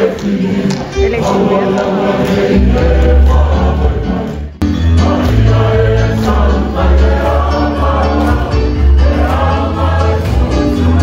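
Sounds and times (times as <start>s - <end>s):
amplified accompaniment with bass: 0.0s - 11.0s
choir singing: 0.0s - 11.0s.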